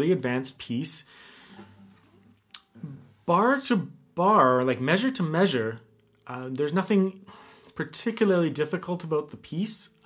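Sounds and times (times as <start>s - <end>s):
faint breathing: 1.0s - 2.1s, 7.2s - 7.8s.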